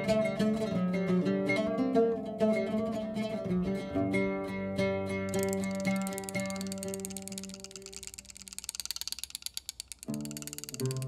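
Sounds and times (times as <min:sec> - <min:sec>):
oud plucked notes: 0:00.0 - 0:08.3
riq jingles: 0:05.3 - 0:11.0.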